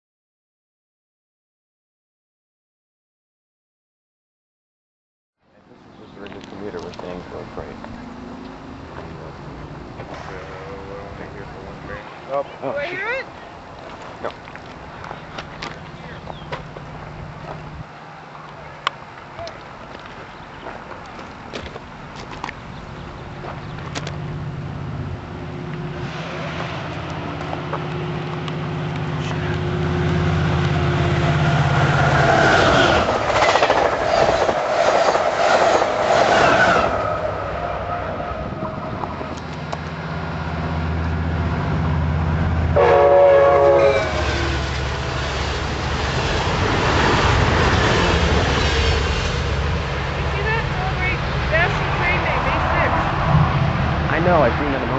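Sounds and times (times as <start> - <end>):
diesel locomotive engine hum: 5.4 - 54.9
train cars rumbling on rails: 5.6 - 54.9
train horn blast: 42.7 - 45.0.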